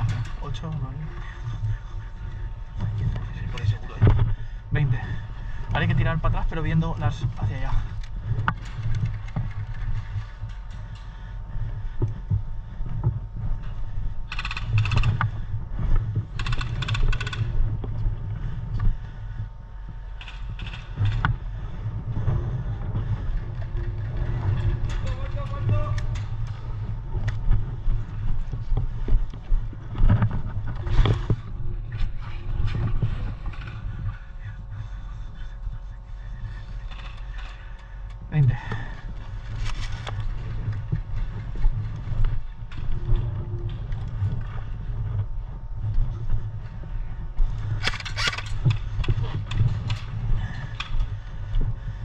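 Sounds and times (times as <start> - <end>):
wind rumble on microphone: 0.0 - 52.0
sharp clicks: 47.8 - 50.0.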